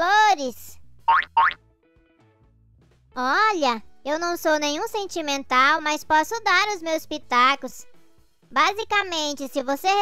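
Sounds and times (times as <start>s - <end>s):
cartoon rising pitch effects: 1.1s - 1.6s.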